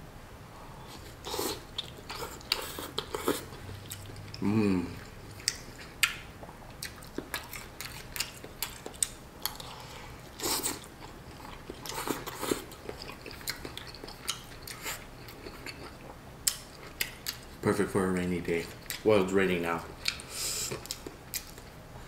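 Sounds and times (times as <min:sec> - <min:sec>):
slurping broth: 0:00.8 - 0:03.6
chewing noodles: 0:00.9 - 0:17.6, 0:18.6 - 0:19.1, 0:19.8 - 0:21.8.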